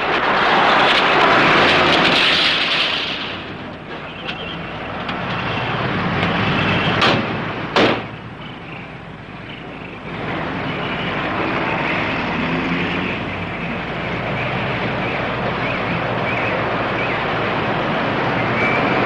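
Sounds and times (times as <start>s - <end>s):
steady noisy background: 0.0s - 19.0s.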